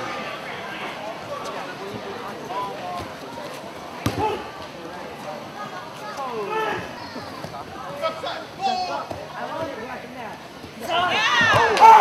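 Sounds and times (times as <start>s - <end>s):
spectators shouting: 10.8s - 12.0s.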